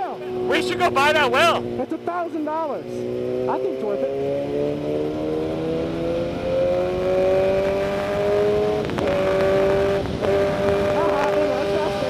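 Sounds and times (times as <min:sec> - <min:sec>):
motorcycle engine accelerating: 0:00.0 - 0:12.0
wind rush: 0:06.2 - 0:12.0.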